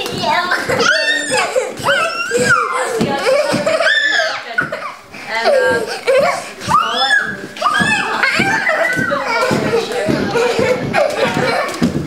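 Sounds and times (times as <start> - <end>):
children chattering and squealing: 0.0 - 12.0.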